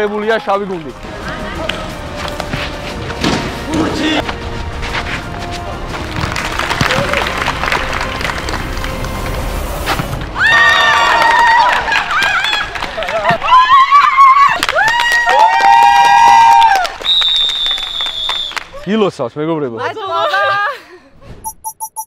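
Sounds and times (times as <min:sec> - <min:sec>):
crowd cheering: 0:06.1 - 0:09.0, 0:10.3 - 0:18.8.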